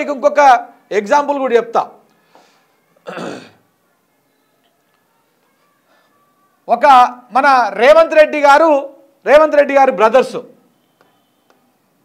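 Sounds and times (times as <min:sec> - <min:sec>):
faint breath: 0:02.1 - 0:02.9, 0:05.6 - 0:06.5
man clearing his throat: 0:03.0 - 0:03.6.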